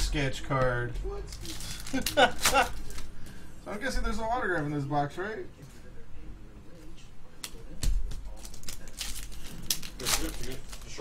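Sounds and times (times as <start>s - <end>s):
wrapper crinkling: 1.3s - 3.2s, 8.3s - 11.0s.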